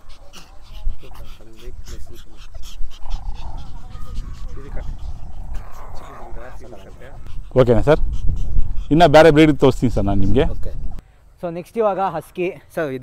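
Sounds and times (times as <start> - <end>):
wind rumble on microphone: 0.6 - 11.0.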